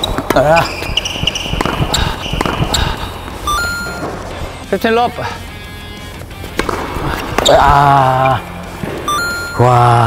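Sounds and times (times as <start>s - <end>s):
tennis ball knocks: 6.6s - 7.5s.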